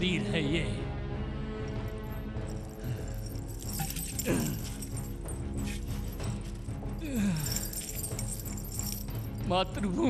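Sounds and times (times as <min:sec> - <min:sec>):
background music: 0:00.0 - 0:10.0
chains rattling and clinking: 0:01.8 - 0:09.5.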